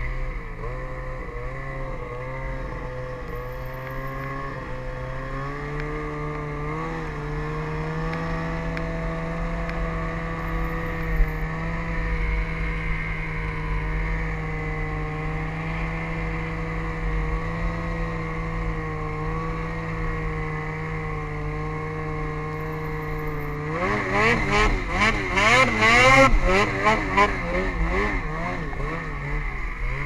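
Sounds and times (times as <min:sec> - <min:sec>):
snowmobile engine running: 0:00.0 - 0:30.0.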